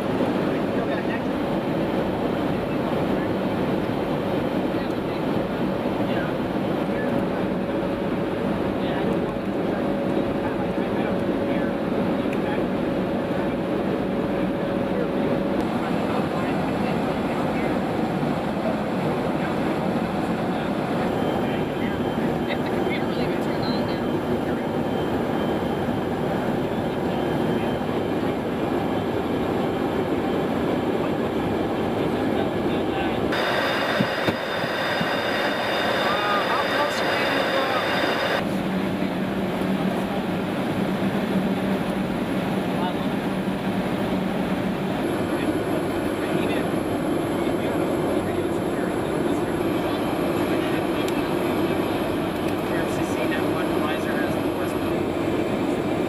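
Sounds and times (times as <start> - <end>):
aircraft cabin engine rumble: 0.0 - 56.0
equipment hum: 31.4 - 38.7
thin high whines: 33.3 - 38.4.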